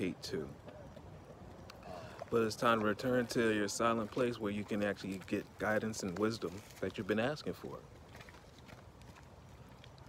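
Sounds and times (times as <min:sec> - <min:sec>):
faint footsteps on path: 0:00.0 - 0:10.0.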